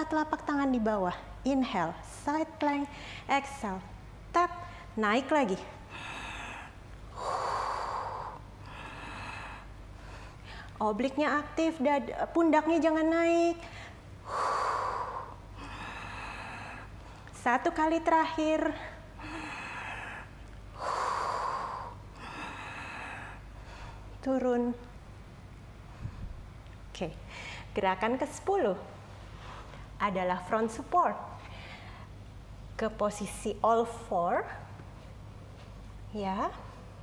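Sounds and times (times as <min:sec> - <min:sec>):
woman breathing: 0:02.9 - 0:03.3, 0:04.6 - 0:05.0, 0:05.6 - 0:10.8, 0:13.6 - 0:17.4, 0:18.4 - 0:24.2, 0:25.8 - 0:26.6, 0:27.2 - 0:27.8, 0:29.2 - 0:30.0, 0:31.3 - 0:32.2.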